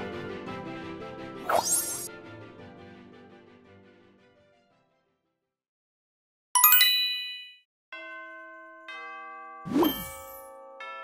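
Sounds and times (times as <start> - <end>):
bright high chime: 6.6 - 11.0.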